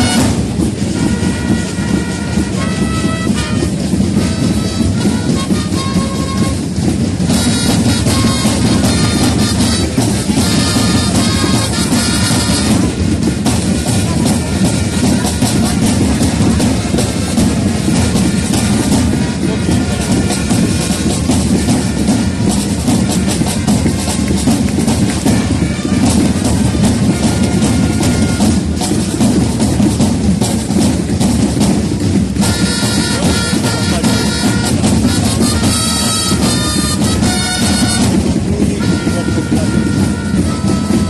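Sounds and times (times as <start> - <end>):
parade drums playing: 0.0 - 41.0
wind instruments holding notes: 0.0 - 41.0.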